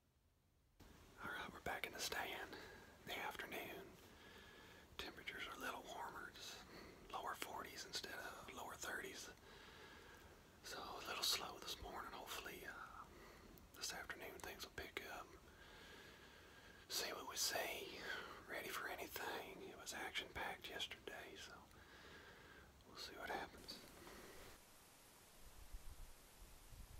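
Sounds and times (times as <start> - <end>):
man whispering: 1.2 - 4.2, 4.8 - 9.4, 10.6 - 15.5, 16.8 - 21.8, 22.8 - 24.4.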